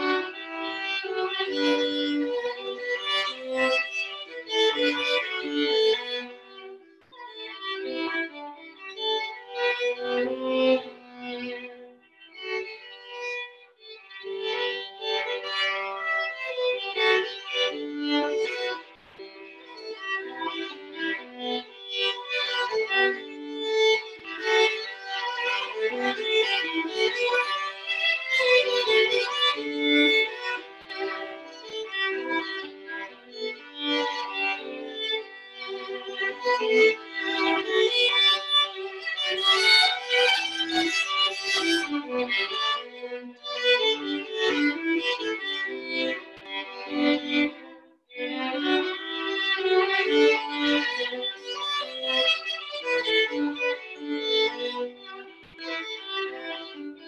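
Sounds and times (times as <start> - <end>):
violin duet: 0.0 - 57.0.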